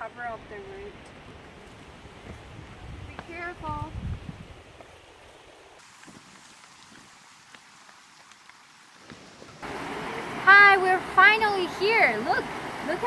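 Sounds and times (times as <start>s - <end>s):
faint steady hiss: 0.0s - 13.0s
river rushing over rocks: 5.8s - 13.0s.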